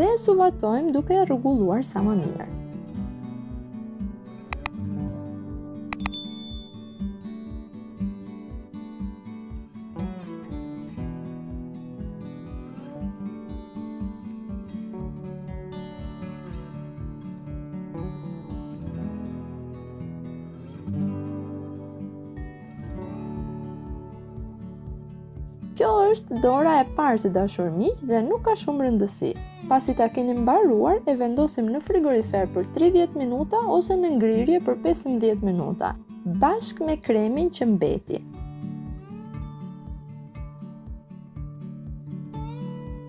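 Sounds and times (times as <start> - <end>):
plucked guitar over a beat: 2.0 - 43.0
short click: 4.5 - 4.8, 6.0 - 6.3
bell-like ding: 6.0 - 7.3.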